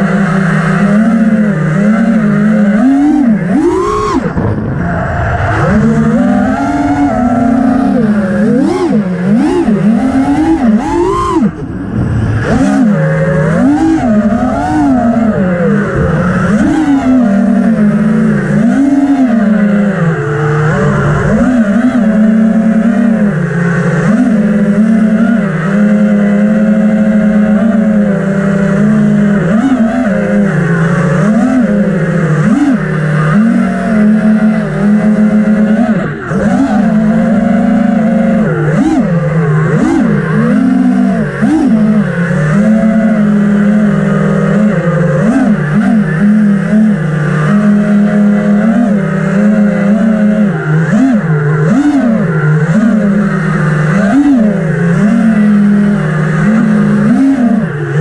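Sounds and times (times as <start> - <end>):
quadcopter motors buzzing: 0.0 - 58.0.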